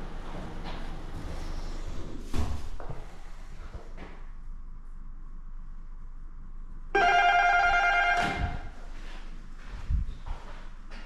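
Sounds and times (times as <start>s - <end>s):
intercom electronic tone: 6.9s - 8.8s.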